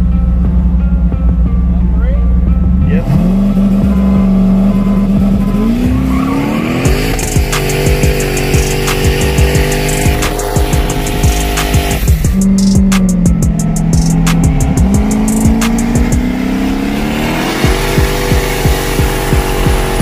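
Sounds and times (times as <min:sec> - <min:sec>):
car engine running hard: 0:00.0 - 0:20.0
music track: 0:00.0 - 0:20.0
regular beat of sharp hits: 0:06.7 - 0:16.6, 0:17.3 - 0:20.0.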